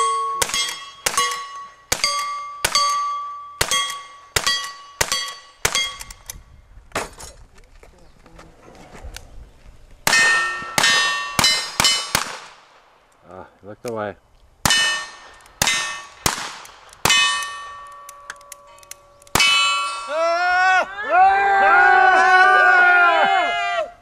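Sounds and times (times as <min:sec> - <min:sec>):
steel target ringing: 0:00.0 - 0:06.2, 0:10.1 - 0:12.2, 0:14.6 - 0:16.4, 0:17.0 - 0:20.4
rifle gunshots: 0:10.0 - 0:13.0, 0:14.6 - 0:17.6
small clicks: 0:17.8 - 0:19.4.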